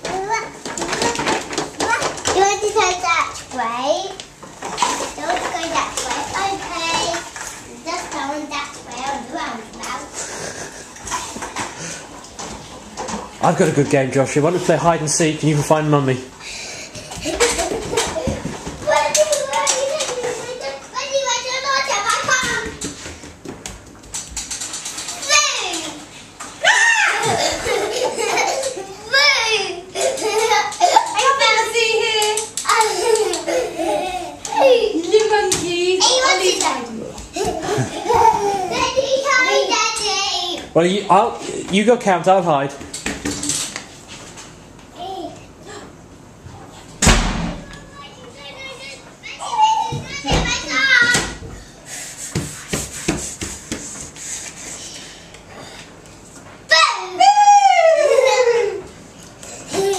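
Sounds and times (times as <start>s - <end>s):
child squealing: 26.6s - 27.5s
child squealing and laughing: 26.6s - 31.2s, 56.7s - 58.9s.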